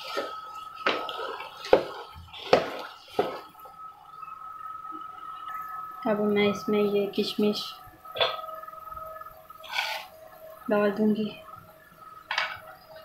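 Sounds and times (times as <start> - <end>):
soft wet stirring sounds: 0.0 - 6.1
faint steady high whine: 0.0 - 13.0
metal spoon scraping steel pot: 9.6 - 10.1.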